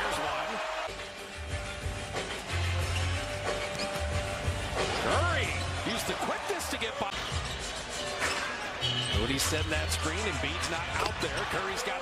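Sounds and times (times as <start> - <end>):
crowd noise: 0.0 - 12.0
music over arena speakers: 0.0 - 12.0.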